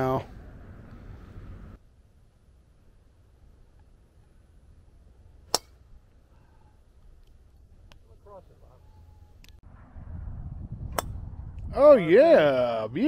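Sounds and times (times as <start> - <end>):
golf club striking ball: 5.4 - 5.9, 10.9 - 11.2
low rumbling noise: 9.5 - 12.1.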